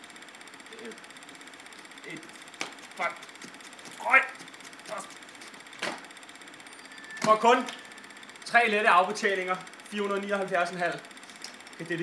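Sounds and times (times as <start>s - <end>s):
fast mechanical rattle: 0.0s - 12.0s.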